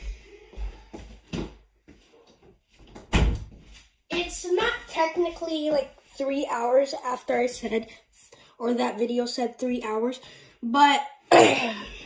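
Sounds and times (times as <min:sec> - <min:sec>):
door closing with knock: 0:03.0 - 0:03.6.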